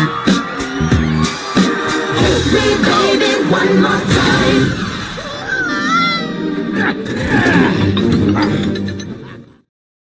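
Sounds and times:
animated film soundtrack music: 2.1s - 9.7s.

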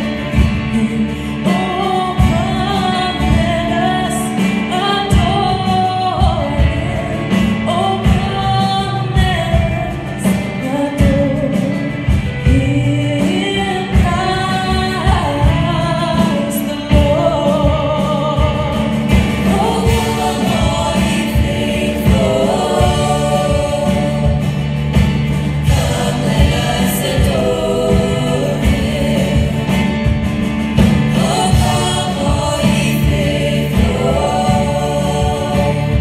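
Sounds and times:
instrumental accompaniment: 0.0s - 36.0s
lead singers on microphones: 0.0s - 36.0s
youth choir singing: 12.0s - 36.0s.

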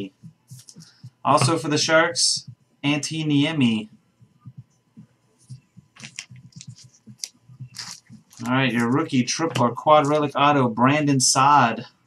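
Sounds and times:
trading cards shuffled: 5.5s - 10.3s.

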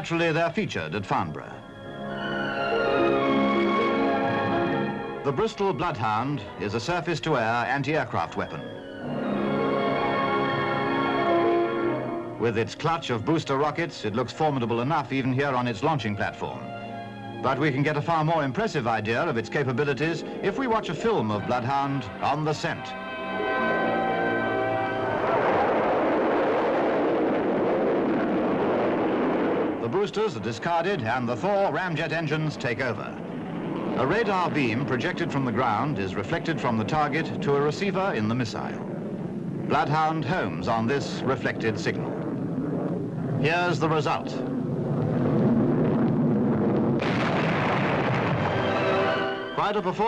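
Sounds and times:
music holding a chord: 1.6s - 6.8s, 8.4s - 12.5s, 16.5s - 25.9s, 48.6s - 50.0s
missile rushing rumble: 25.0s - 31.4s, 32.0s - 50.0s
missile booster rockets firing: 33.3s - 37.3s, 44.9s - 50.0s.

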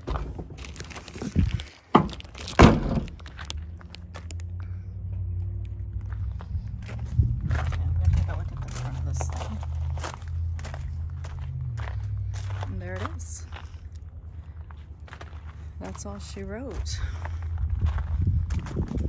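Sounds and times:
footsteps on gravel: 0.0s - 4.6s, 5.4s - 19.0s
car door shutting: 2.0s - 3.2s.

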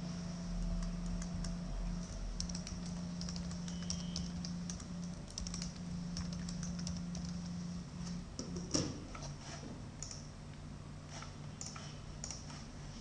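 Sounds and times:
steady low hum: 0.0s - 13.0s
keyboard typing clicks: 0.6s - 7.6s, 10.0s - 10.3s, 11.6s - 12.6s.

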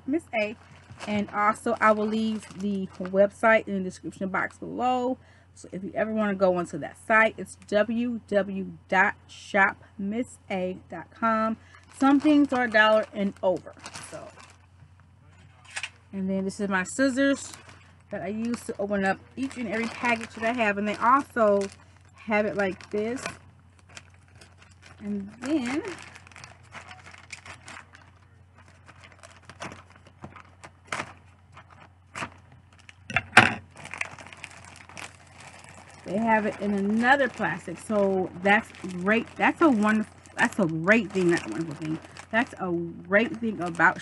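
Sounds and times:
plastic bag crinkle: 0.1s - 5.0s, 11.1s - 14.8s, 16.5s - 44.0s
plastic mailer bag rustling: 0.1s - 5.0s, 11.1s - 14.8s, 15.9s - 44.0s
scissors cutting plastic bag: 19.4s - 21.7s.

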